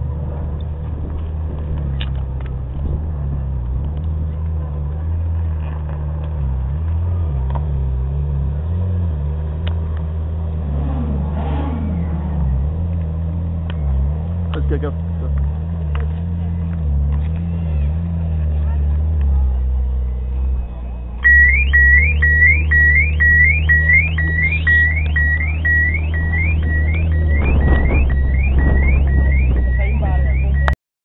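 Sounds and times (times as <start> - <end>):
car engine idling: 12.0 - 30.8
car alarm chirping: 21.2 - 30.8.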